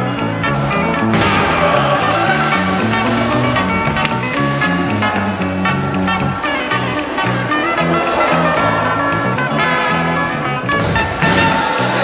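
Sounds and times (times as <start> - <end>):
instrumental music with bass line: 0.0 - 12.0
thud: 1.1 - 4.6.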